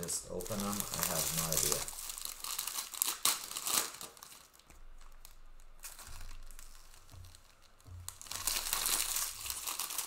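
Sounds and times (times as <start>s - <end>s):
person speaking: 0.0s - 2.0s
foil wrappers crinkling: 0.0s - 10.0s.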